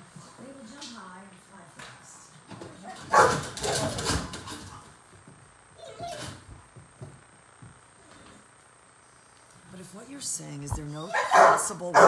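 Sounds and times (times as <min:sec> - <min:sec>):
dog barking: 0:03.1 - 0:03.9, 0:11.1 - 0:12.0.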